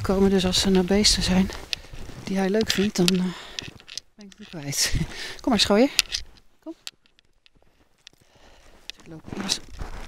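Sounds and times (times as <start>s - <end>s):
footsteps in powder snow: 0.0s - 3.9s, 7.6s - 10.0s.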